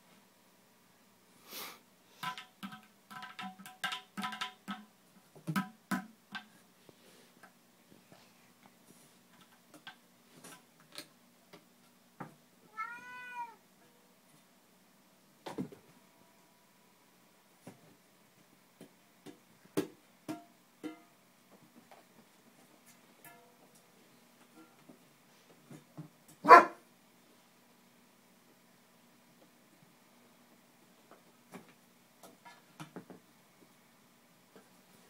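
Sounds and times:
tapping on plastic bowl: 2.2s - 6.5s.

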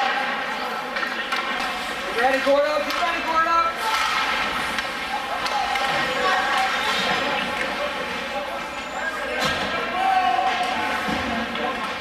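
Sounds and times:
crowd murmur: 3.7s - 12.0s.

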